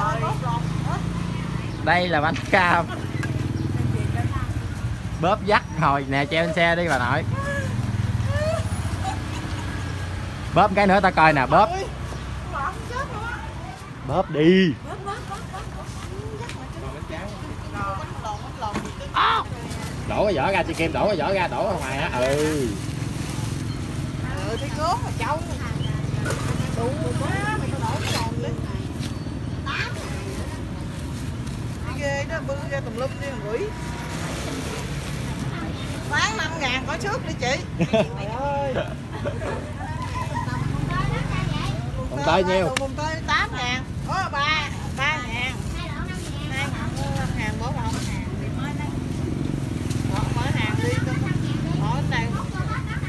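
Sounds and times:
people talking: 39.2 - 49.0, 50.0 - 53.0.

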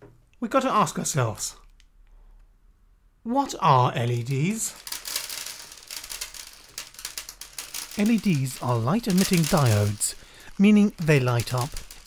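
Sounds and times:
plastic bag rustling: 4.0 - 12.0
small leds pattering on wood: 4.3 - 12.0.

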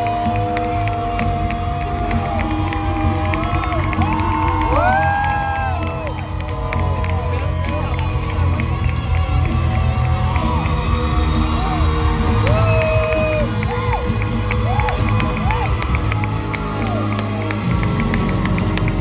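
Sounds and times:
audience cheering and whooping: 0.0 - 19.0.

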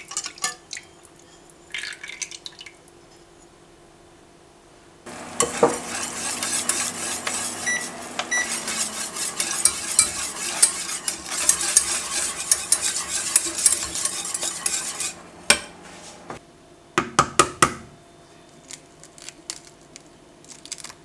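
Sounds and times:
whisk scraping a saucepan: 5.1 - 16.3.

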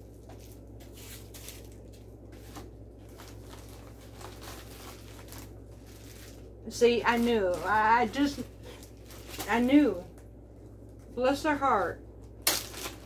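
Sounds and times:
paper packing crinkling: 0.0 - 11.1, 12.3 - 13.0
steady low hum: 0.0 - 13.0.

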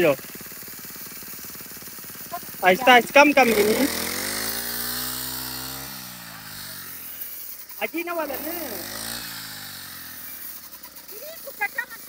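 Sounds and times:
brush cutter engine running: 0.0 - 12.0.

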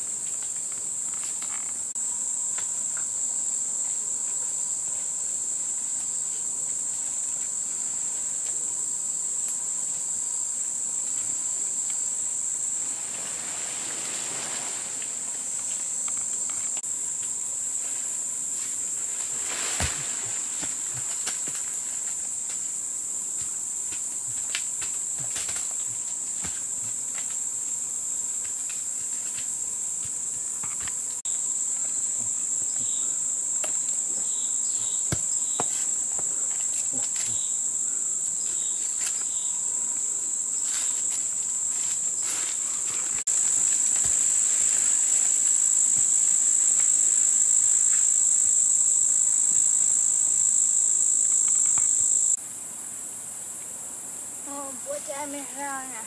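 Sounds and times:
insects droning: 0.0 - 56.0.

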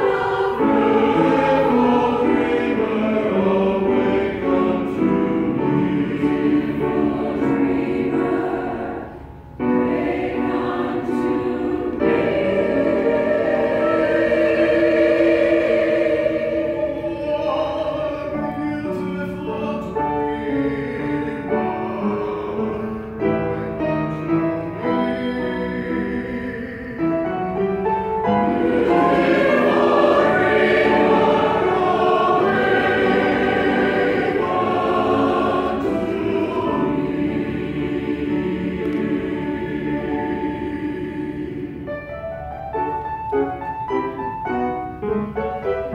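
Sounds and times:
choir singing held chords: 0.0 - 27.2, 28.0 - 42.4.

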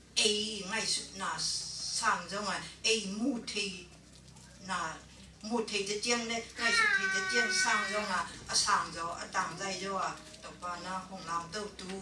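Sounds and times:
elderly woman speaking into microphone: 0.2 - 3.9, 4.6 - 12.0.

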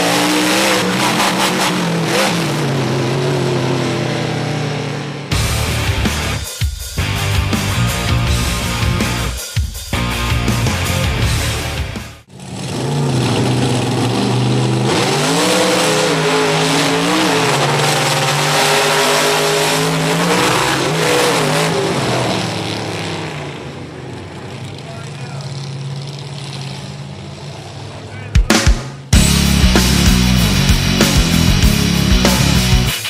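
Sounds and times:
monster truck engines at full throttle: 0.0 - 9.4, 10.0 - 33.0
rock music: 0.0 - 12.3, 28.2 - 33.0.

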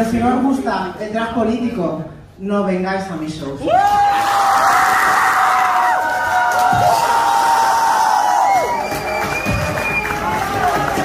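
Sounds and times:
audience cheering and clapping: 3.7 - 11.0.

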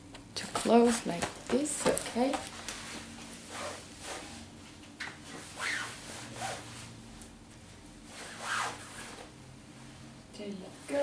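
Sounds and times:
coat fabric rustling: 2.5 - 4.6.

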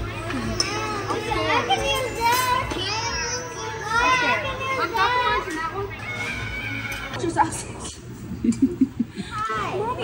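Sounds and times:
music: 0.0 - 7.2
children talking and exclaiming: 0.0 - 10.0.

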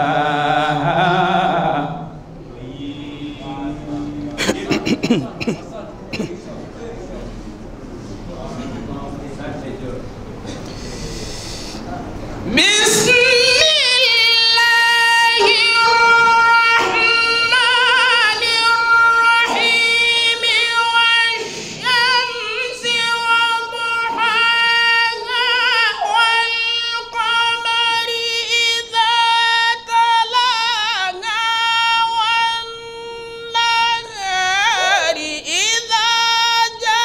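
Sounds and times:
man chanting recitation: 0.0 - 7.4, 11.0 - 37.0.

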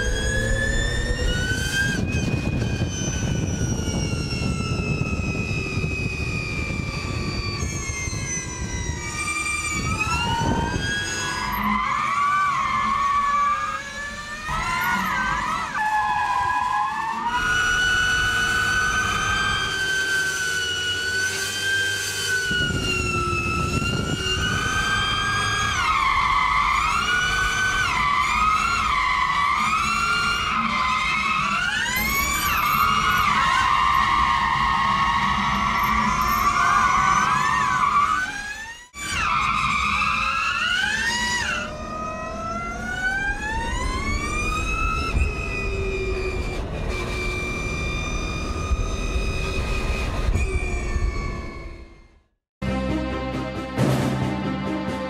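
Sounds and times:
electric drive whining: 0.0 - 52.3
rough tyre noise: 0.0 - 52.3.

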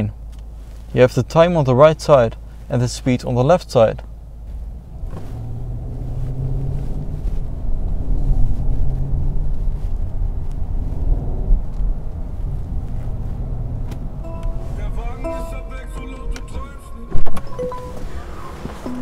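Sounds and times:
car cabin road rumble: 0.0 - 19.0.

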